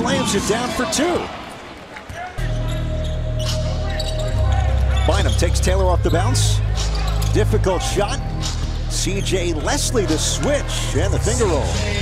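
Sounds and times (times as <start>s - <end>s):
bass-heavy music with deep beat: 2.4s - 12.0s.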